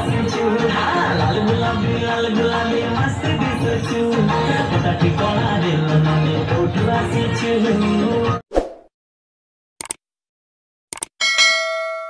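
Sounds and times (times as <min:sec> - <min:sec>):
notification bell chime: 0:11.2 - 0:12.0.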